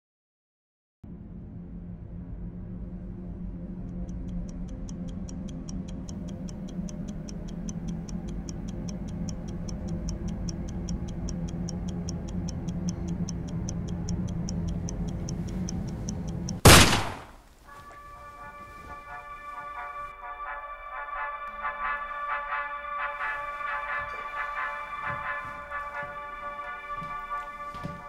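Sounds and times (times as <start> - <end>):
low steady drone: 1.0 - 17.1, 18.0 - 28.0
fast clock ticking: 3.9 - 16.7.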